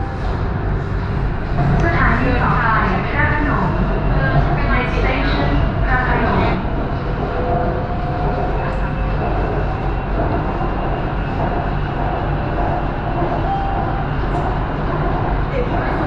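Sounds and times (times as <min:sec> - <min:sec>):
train rumble inside car: 0:00.0 - 0:16.0.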